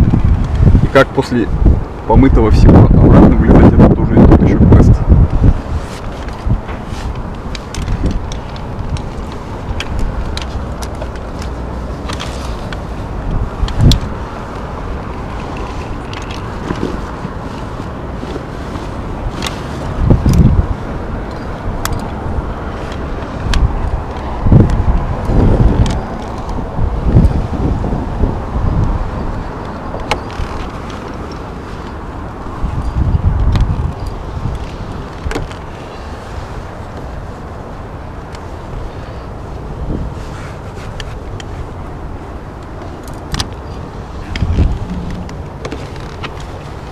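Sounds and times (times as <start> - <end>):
wind rumbling on microphone: 0.0 - 46.9
small clicks and scrapes: 5.7 - 20.6, 29.6 - 32.0, 40.1 - 41.8, 42.6 - 46.9.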